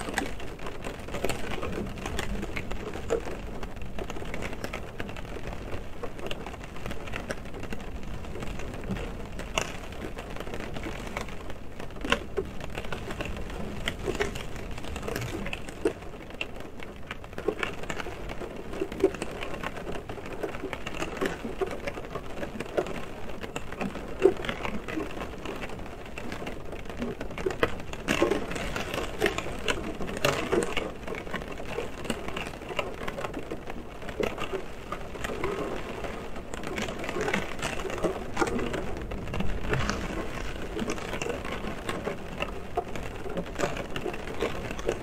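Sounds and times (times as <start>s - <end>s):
rain drops on car roof: 0.0s - 45.0s.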